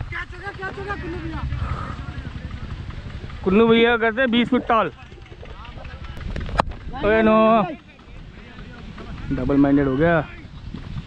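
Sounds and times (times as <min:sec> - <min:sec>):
wind rumble on microphone: 0:01.4 - 0:11.0.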